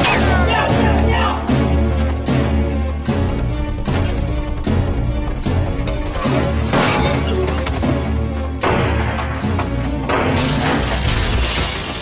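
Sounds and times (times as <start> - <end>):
dramatic score music: 0.0 - 12.0
glass shattering: 10.4 - 12.0.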